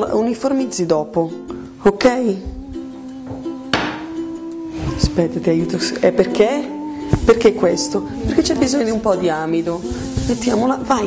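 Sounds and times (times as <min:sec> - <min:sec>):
background music with held notes: 0:00.0 - 0:11.0
sharp knock: 0:03.7 - 0:04.1.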